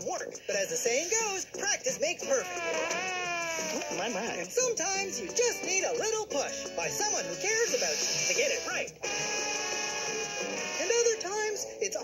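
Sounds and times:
cartoon elephant trumpet call: 2.2 - 4.1
narrator speaking: 10.8 - 12.0.

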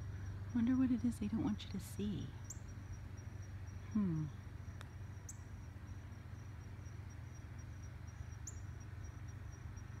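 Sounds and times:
high thin insect trill: 0.0 - 10.0
low background rumble: 0.0 - 10.0.

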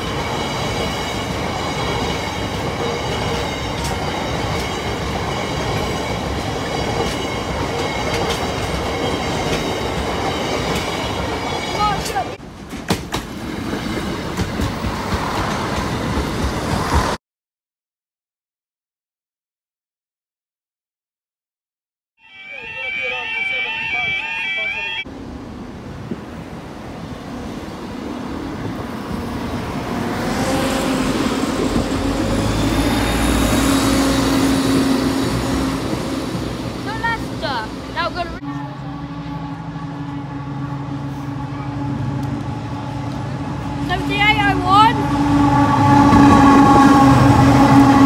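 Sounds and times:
passing train rumble: 0.0 - 17.2, 22.2 - 48.0
repeating pitched crossing tones: 22.2 - 25.0
locomotive engine hum: 22.3 - 48.0.

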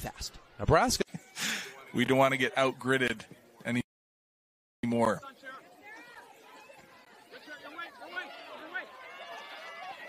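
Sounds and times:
spectators chattering: 0.0 - 3.8, 4.8 - 10.0
players calling out: 4.9 - 10.0.

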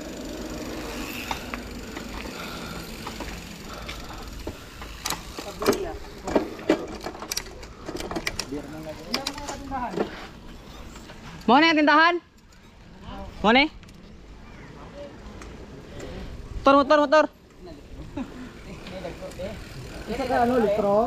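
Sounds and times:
bike tyres on concrete: 0.0 - 21.0
riders calling out: 0.0 - 21.0.

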